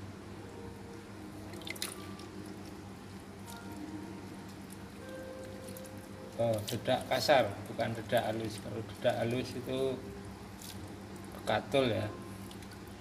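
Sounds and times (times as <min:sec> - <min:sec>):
steady low hum: 0:00.0 - 0:13.0
liquid dripping and splashing: 0:00.9 - 0:09.8, 0:10.5 - 0:13.0.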